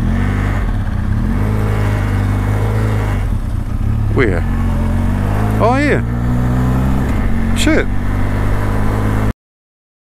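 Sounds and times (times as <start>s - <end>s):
motorcycle engine running: 0.0s - 9.3s.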